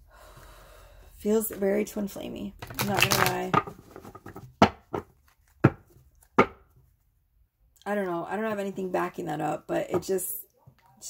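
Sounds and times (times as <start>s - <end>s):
woman speaking: 1.2s - 3.6s, 7.8s - 10.5s
hard object knocking on tabletop: 3.6s - 5.8s, 6.4s - 6.6s.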